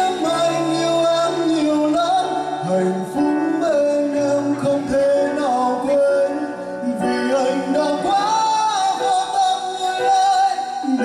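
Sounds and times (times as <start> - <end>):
man singing: 0.0 - 11.0
upright piano accompaniment: 0.0 - 11.0.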